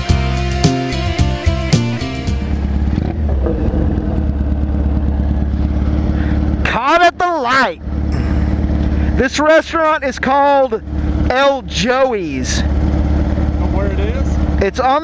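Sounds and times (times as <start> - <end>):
electric guitar and drum music: 0.0 - 6.6
motorcycle engine idling: 1.0 - 15.0.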